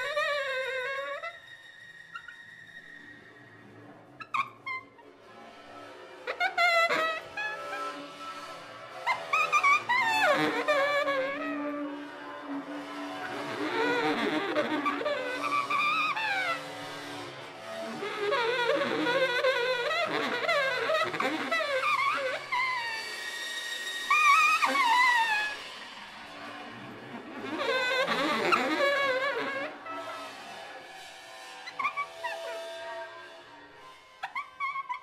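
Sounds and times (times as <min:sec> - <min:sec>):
baritone saxophone squealing: 0:00.0 - 0:05.1, 0:05.9 - 0:35.0
stick scraping a cymbal: 0:01.2 - 0:35.0.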